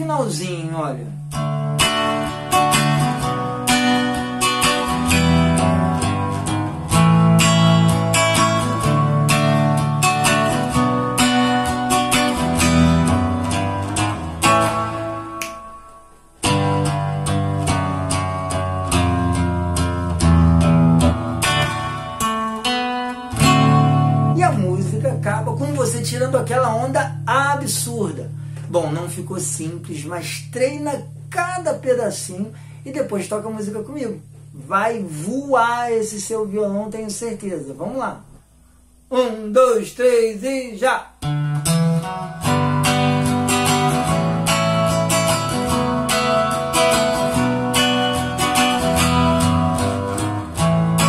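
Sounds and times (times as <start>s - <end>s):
nylon-string guitar strumming: 0.0s - 51.0s.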